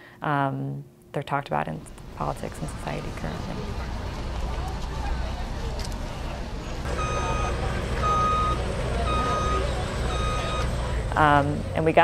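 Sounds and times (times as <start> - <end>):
outdoor crowd noise: 2.2 - 11.8
vehicle reversing alarm beeping: 6.8 - 11.8.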